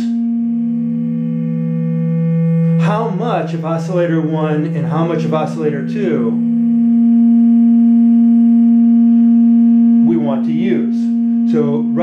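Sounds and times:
synthesizer held note: 0:00.0 - 0:12.0.

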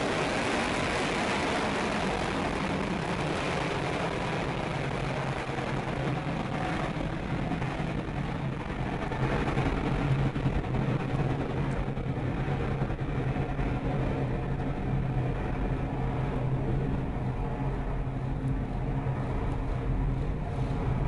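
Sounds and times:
rocket engine rumble: 0:00.0 - 0:21.0.

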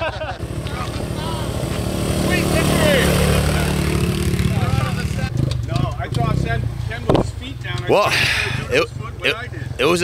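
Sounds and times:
engine running at full throttle: 0:00.4 - 0:05.3.

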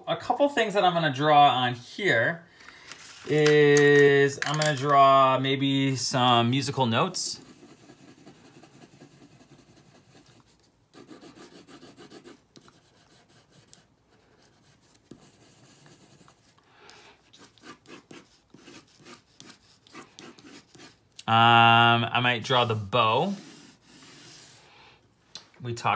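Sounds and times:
pencil scratching on paper: 0:07.3 - 0:16.6, 0:17.2 - 0:21.0, 0:22.6 - 0:24.7.

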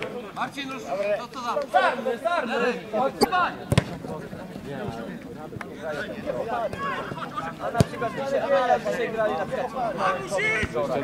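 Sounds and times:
men's voices: 0:00.0 - 0:11.0.

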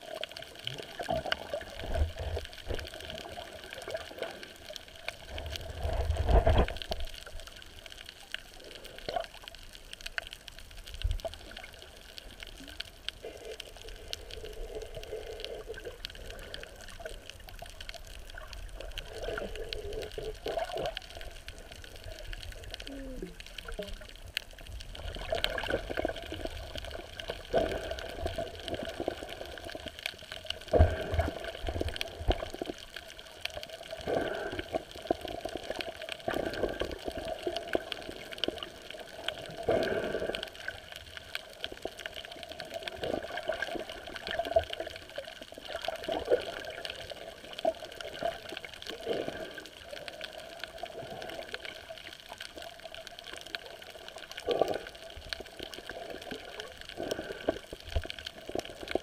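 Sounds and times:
muffled underwater water sloshing: 0:00.0 - 0:59.0.

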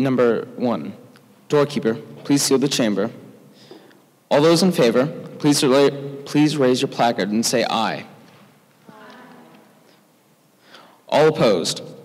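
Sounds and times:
distant group saying aye: 0:08.8 - 0:09.8.

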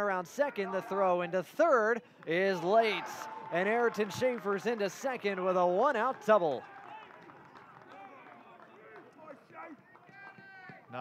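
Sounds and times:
people talking and calling out: 0:00.0 - 0:11.0.

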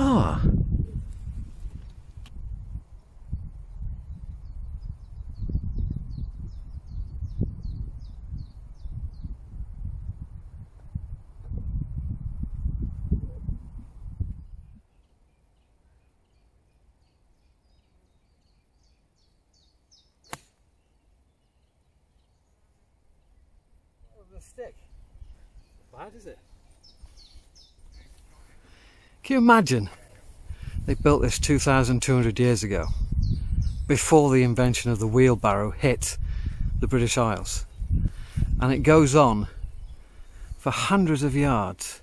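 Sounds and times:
wind buffeting microphone: 0:00.0 - 0:15.0, 0:23.4 - 0:28.9, 0:29.5 - 0:41.8
birds chirping: 0:02.8 - 0:09.6, 0:14.2 - 0:42.0.

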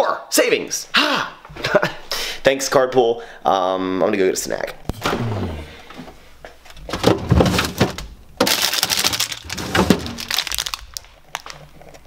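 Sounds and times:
plastic wrappers crinkling: 0:06.7 - 0:12.0.

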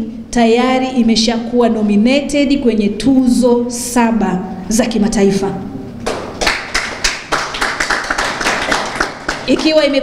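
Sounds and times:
audience clapping: 0:06.0 - 0:10.0.

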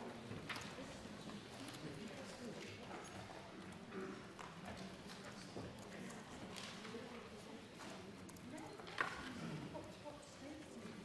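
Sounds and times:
voices chattering quietly: 0:00.0 - 0:11.0.

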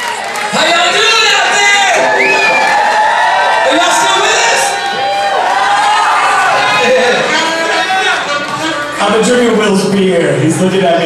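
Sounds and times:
audience cheering and whooping: 0:00.0 - 0:09.2
people shouting: 0:01.0 - 0:09.0.

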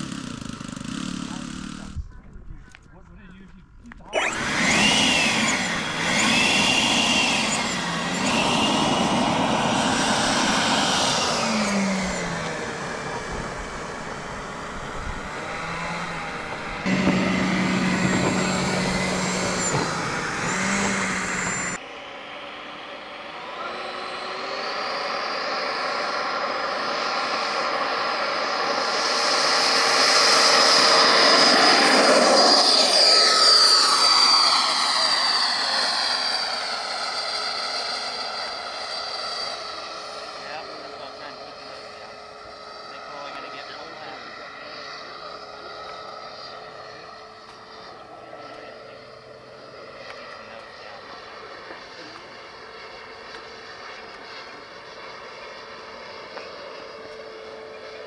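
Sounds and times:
model jet fan whining: 0:00.0 - 0:58.0.

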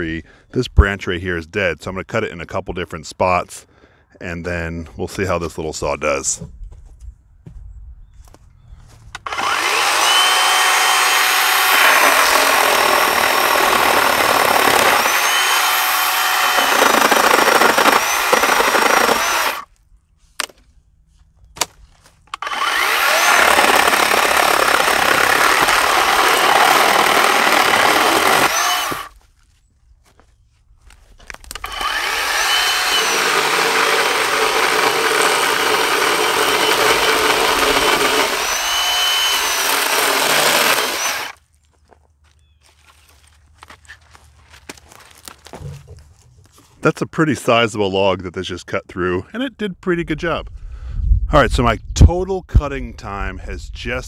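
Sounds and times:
electric chainsaw cutting branch: 0:09.2 - 0:19.7, 0:22.3 - 0:29.1, 0:31.4 - 0:41.4.

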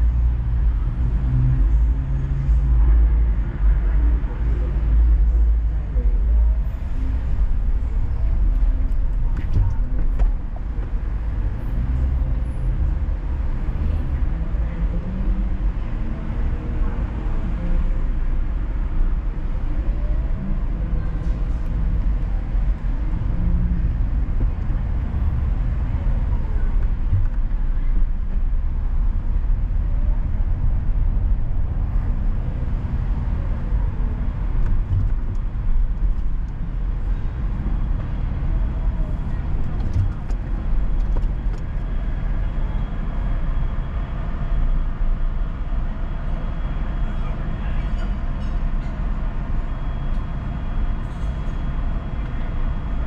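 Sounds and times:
car engine and road noise: 0:00.0 - 0:53.0.

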